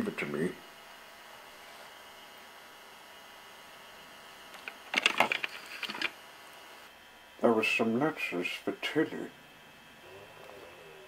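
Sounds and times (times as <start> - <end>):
hard objects clicking and clattering: 4.6 - 6.2.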